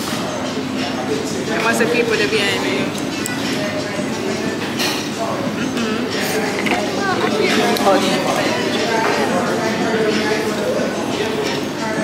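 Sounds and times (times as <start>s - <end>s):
indistinct voices talking: 0.4s - 12.0s.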